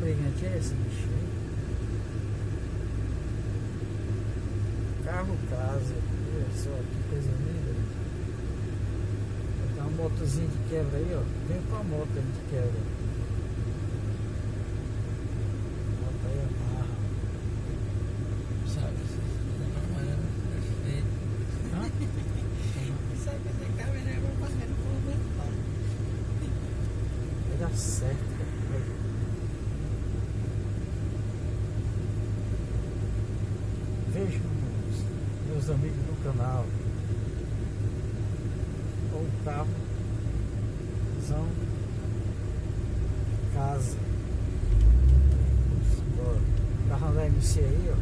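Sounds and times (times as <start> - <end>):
idling vehicle engines rumbling: 0.0 - 48.0.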